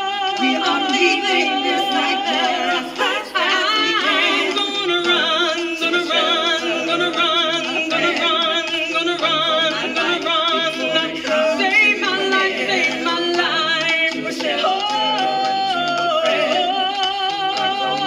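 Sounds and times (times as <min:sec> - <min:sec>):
women singing a cappella: 0:00.0 - 0:18.0.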